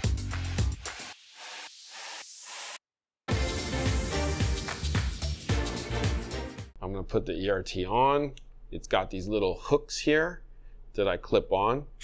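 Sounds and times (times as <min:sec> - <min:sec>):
hissing white-noise riser: 0:00.8 - 0:02.8
background music: 0:03.3 - 0:06.8.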